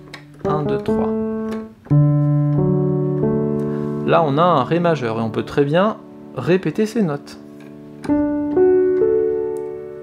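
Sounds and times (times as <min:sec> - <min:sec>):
piano chord notes ringing: 0:00.0 - 0:10.0.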